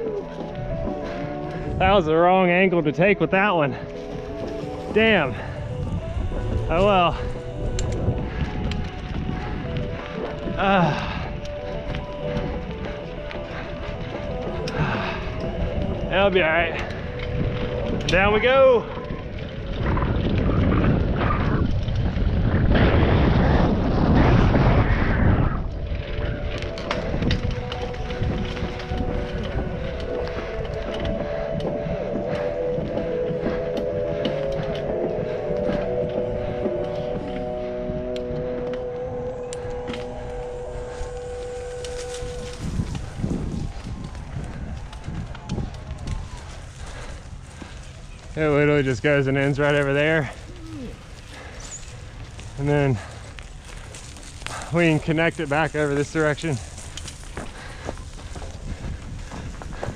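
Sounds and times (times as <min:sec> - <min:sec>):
bike tyre rumble on dirt: 0:00.0 - 0:59.9
wind rushing: 0:00.0 - 0:59.9.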